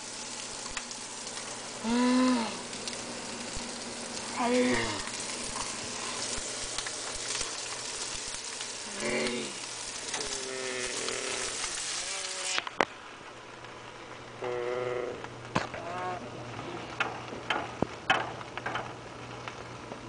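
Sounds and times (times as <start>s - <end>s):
food sizzling in frying pan: 0.0s - 15.9s
person moaning: 1.8s - 2.7s, 4.3s - 5.2s, 8.8s - 12.6s, 14.4s - 16.8s.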